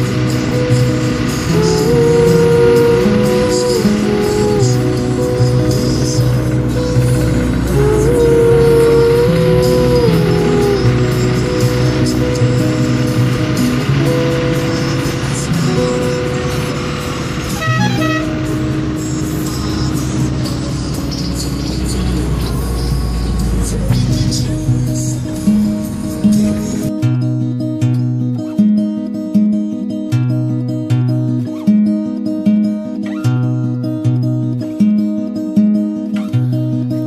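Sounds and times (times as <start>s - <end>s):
song with guitar accompaniment: 0.0s - 37.0s.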